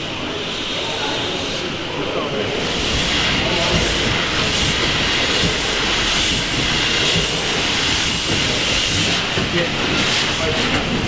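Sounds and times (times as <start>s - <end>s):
steam hissing: 0.0s - 11.0s.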